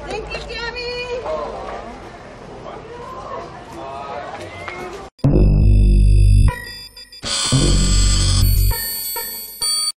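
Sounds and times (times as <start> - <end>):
high ringing synth tones: 5.2 - 10.0.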